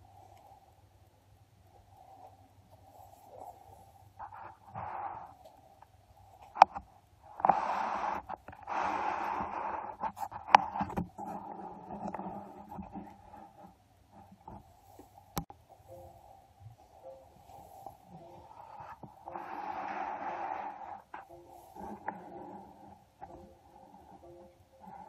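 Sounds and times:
breathy hissing and rustling: 1.7 - 25.0.

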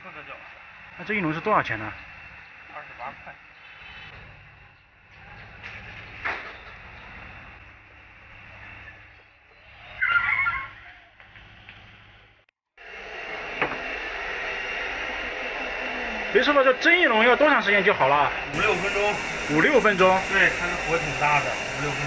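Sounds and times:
steam rising: 0.0 - 9.8, 12.8 - 22.0
roar of stove fire: 0.3 - 9.9, 18.5 - 22.0.

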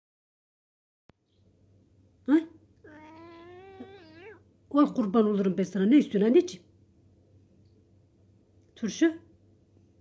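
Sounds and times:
cat meowing: 2.8 - 4.5.

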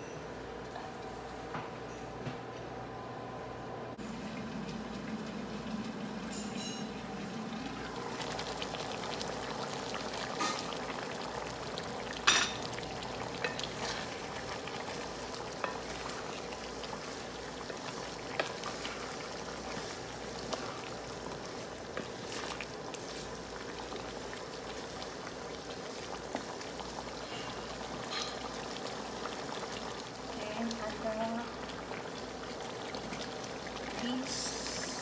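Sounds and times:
stew simmering in a pan: 3.9 - 35.0.

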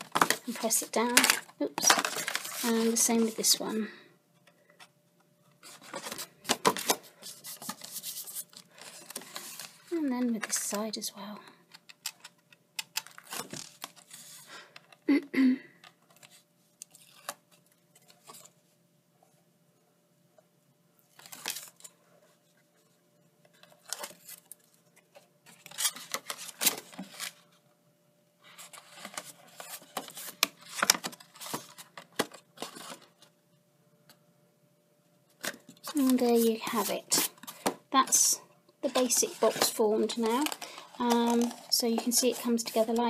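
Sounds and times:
cardstock rustling and crackling: 0.0 - 3.7, 5.6 - 10.8, 11.8 - 14.7, 23.5 - 27.5, 28.5 - 33.3, 35.3 - 43.0.

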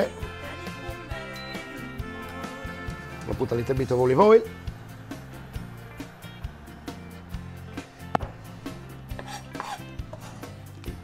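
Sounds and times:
quiet background music: 0.0 - 11.0
kitchen items knocking on countertop: 8.1 - 8.4.

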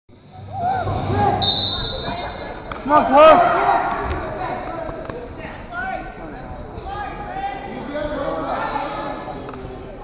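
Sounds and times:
referee's whistle blast: 1.4 - 2.6.

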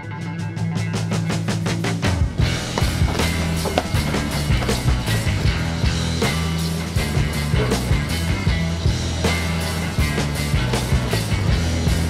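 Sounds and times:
rock music with bass and drums: 0.2 - 12.0.

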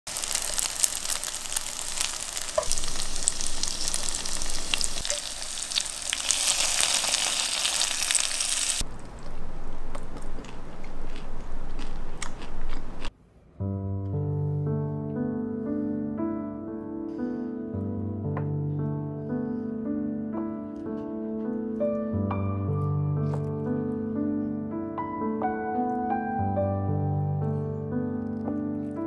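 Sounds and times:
tofu sizzling in oil: 0.1 - 8.8
soft piano music: 0.1 - 9.1, 13.6 - 29.0.

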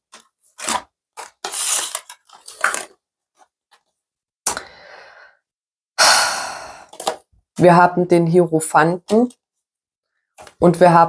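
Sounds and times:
woman sighing heavily: 6.0 - 7.0.

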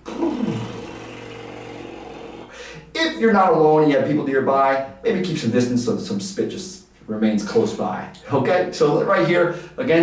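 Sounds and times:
man doing lip trill: 0.0 - 2.6.

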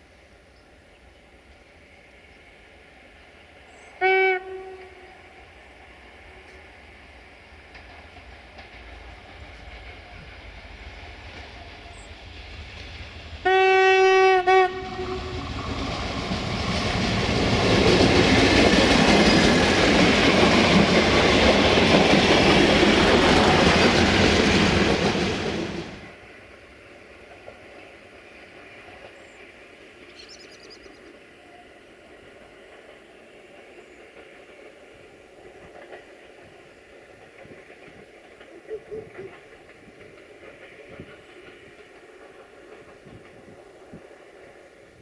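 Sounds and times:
railcar approaching: 0.0 - 45.0
train horn blast: 4.0 - 5.5, 13.4 - 15.5.

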